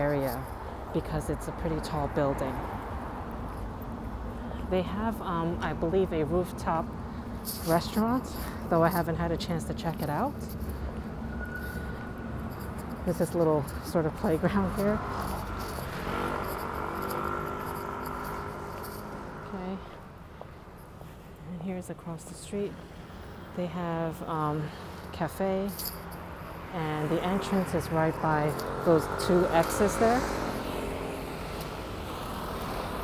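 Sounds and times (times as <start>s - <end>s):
low rumble of street noise: 0.0s - 33.0s
road traffic hum: 0.0s - 33.0s.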